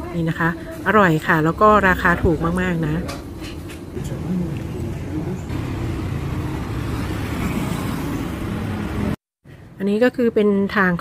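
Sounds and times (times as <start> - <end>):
road traffic noise: 0.6 - 9.8
cars and motorbikes passing: 3.9 - 9.2.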